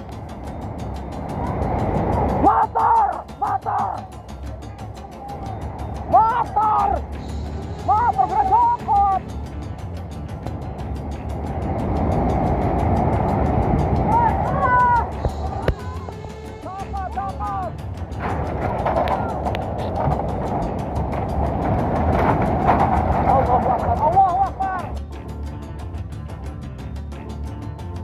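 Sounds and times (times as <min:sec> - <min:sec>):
floodwater rushing: 0:00.0 - 0:25.2
men shouting: 0:02.4 - 0:04.1, 0:05.1 - 0:07.1, 0:07.9 - 0:09.2, 0:14.1 - 0:16.1.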